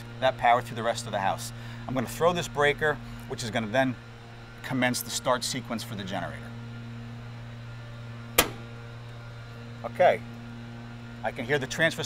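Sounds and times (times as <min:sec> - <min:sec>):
low electrical hum: 0:00.0 - 0:12.0
circuit breaker snap: 0:08.3 - 0:08.8.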